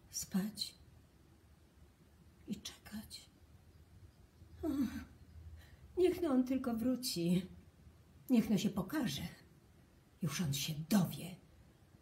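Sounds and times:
woman speaking softly: 0:00.0 - 0:00.9, 0:02.4 - 0:03.4, 0:06.0 - 0:07.6, 0:08.3 - 0:09.5, 0:10.2 - 0:11.4.

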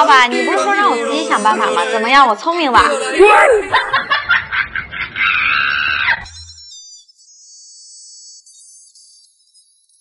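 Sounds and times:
woman comic crying: 0:03.2 - 0:03.9.

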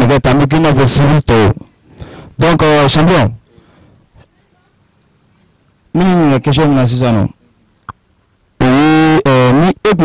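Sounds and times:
man speaking into a microphone: 0:00.0 - 0:01.7, 0:02.3 - 0:03.8, 0:05.9 - 0:07.4, 0:08.6 - 0:10.0.

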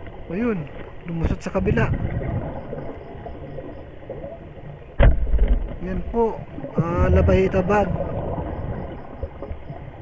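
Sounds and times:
underwater churning: 0:00.0 - 0:10.0
loud underwater thump: 0:05.0 - 0:05.8.

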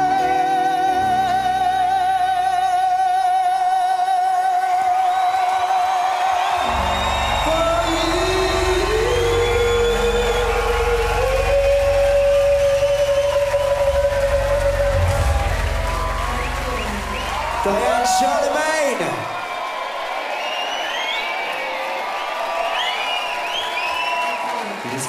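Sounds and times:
full band with heavy bass: 0:06.6 - 0:19.3.

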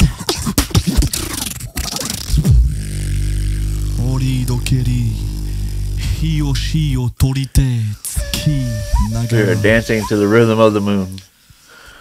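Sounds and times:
vocal drum strokes: 0:02.3 - 0:06.9, 0:08.2 - 0:11.2
low vocal bass drone: 0:02.5 - 0:07.2, 0:08.2 - 0:10.7
pitched vocal melody: 0:03.1 - 0:11.2.

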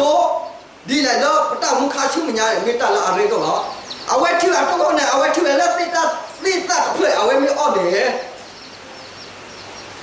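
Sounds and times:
man speaking: 0:00.0 - 0:08.4
faint low hum: 0:00.0 - 0:10.0
faint high chirps: 0:08.1 - 0:10.0.

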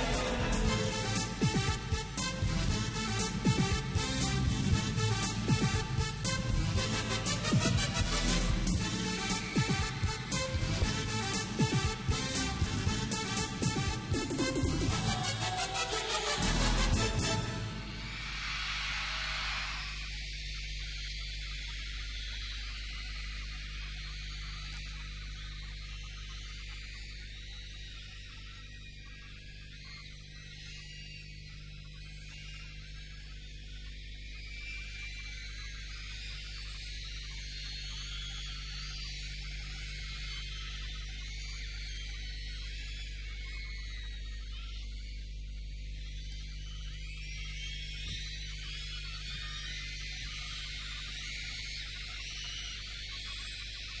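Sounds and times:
concert audience screaming and cheering: 0:00.0 - 0:20.3
electrical mains hum: 0:00.0 - 0:54.0.

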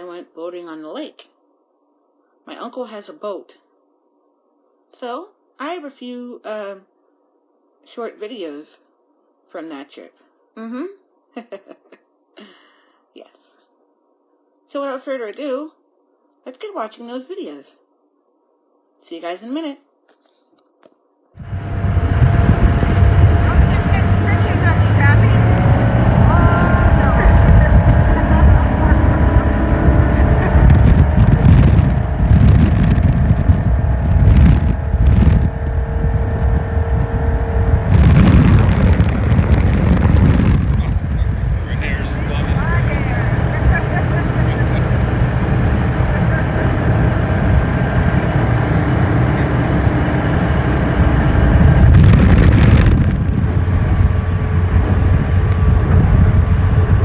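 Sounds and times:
water rushing along hull: 0:21.4 - 0:35.5
motorboat engine drone: 0:21.4 - 0:57.0
wind gusting on microphone: 0:21.4 - 0:57.0.

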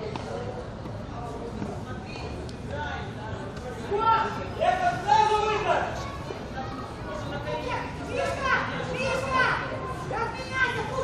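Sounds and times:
teenagers shouting: 0:03.9 - 0:11.0.

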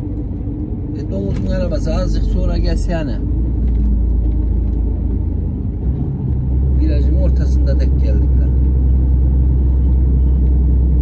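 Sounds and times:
diesel lorry engine rumble: 0:00.0 - 0:11.0
road noise inside cab: 0:00.0 - 0:11.0.

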